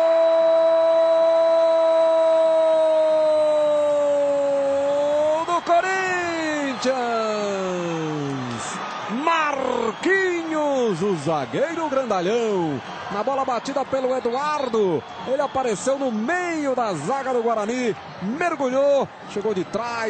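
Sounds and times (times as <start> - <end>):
excited shouts: 0.0 - 18.0.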